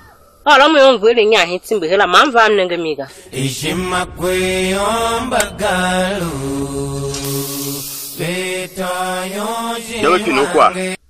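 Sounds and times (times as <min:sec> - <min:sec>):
person chanting: 0:03.3 - 0:11.0.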